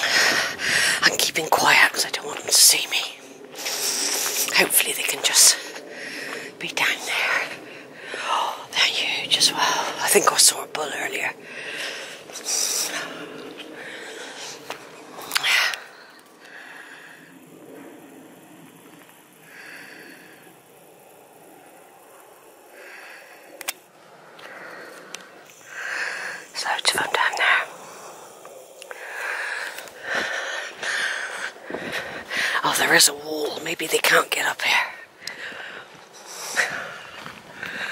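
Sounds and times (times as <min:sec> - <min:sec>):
woman whispering: 0:01.0 - 0:11.5, 0:12.2 - 0:13.8, 0:15.2 - 0:16.0, 0:26.2 - 0:28.0, 0:32.3 - 0:35.1.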